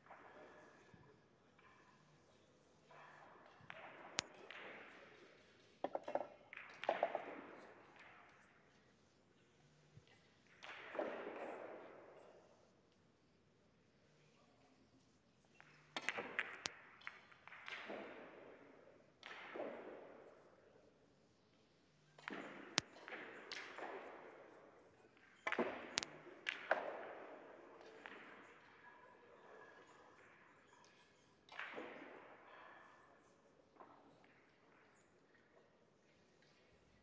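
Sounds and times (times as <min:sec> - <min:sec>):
billiard balls colliding: 0:05.8 - 0:07.4
billiard balls rolling and knocking: 0:05.8 - 0:07.4.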